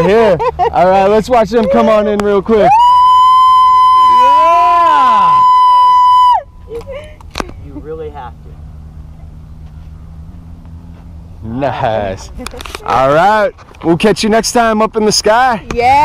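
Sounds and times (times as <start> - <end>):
low hum: 0.0 - 13.8.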